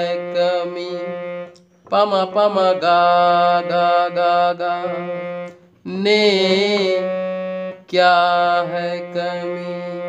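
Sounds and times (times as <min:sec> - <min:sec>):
harmonium playing a note: 0:00.0 - 0:10.0.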